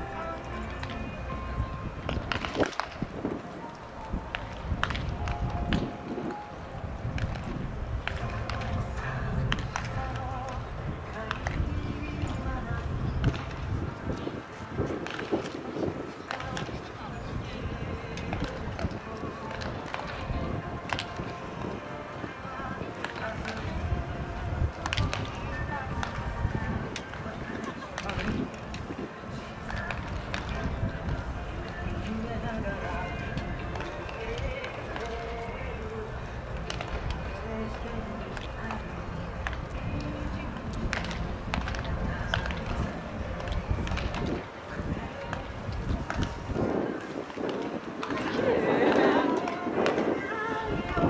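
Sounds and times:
overlapping background chatter: 0.0s - 51.0s
people talking outdoors: 0.0s - 51.0s.

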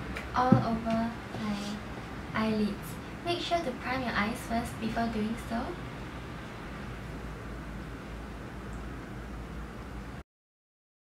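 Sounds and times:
low room hum: 0.0s - 10.2s.

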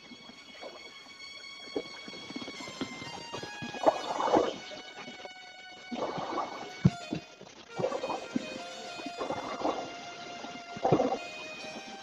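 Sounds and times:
background music of held tones: 0.0s - 12.0s.

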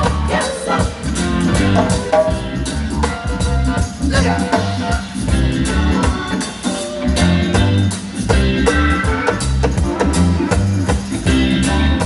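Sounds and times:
drums: 0.0s - 12.0s
electric guitar: 0.0s - 12.0s
heavy bass line: 0.0s - 12.0s
live reggae band playing: 0.0s - 12.0s.

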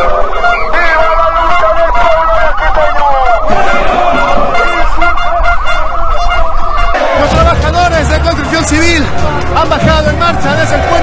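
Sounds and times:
fast warbling siren: 0.0s - 7.0s.

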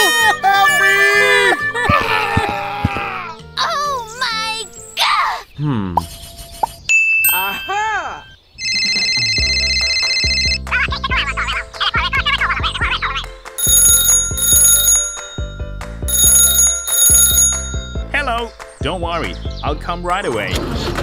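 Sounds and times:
cheerful background music: 0.0s - 5.2s, 8.8s - 21.0s
trilling telephone ringtone: 6.9s - 10.6s, 13.6s - 18.1s.

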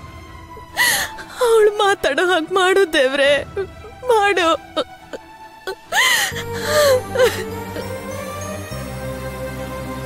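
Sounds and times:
soft background music: 0.0s - 10.0s
woman crying: 0.6s - 8.0s.

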